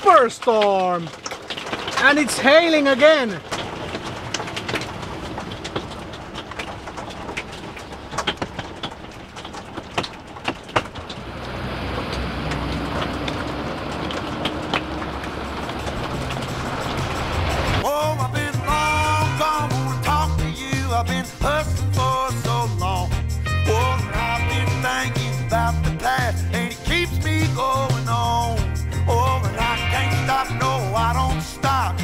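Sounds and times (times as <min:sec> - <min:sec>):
hail ticking on vehicle roof: 0:00.0 - 0:23.1
heavy rain on roof: 0:00.0 - 0:23.2
music: 0:17.8 - 0:32.0.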